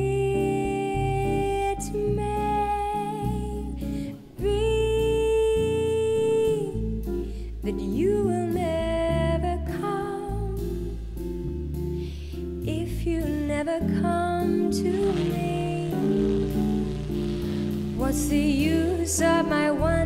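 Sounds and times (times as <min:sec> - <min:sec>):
woman singing bossa nova: 0:00.0 - 0:11.3, 0:12.6 - 0:20.0
small jazz band: 0:14.4 - 0:20.0.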